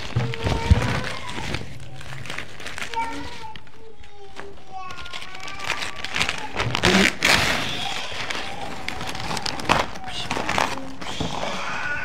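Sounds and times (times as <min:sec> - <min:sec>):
paper tearing: 0:00.0 - 0:04.2, 0:04.8 - 0:12.0
paper crinkling: 0:00.0 - 0:12.0.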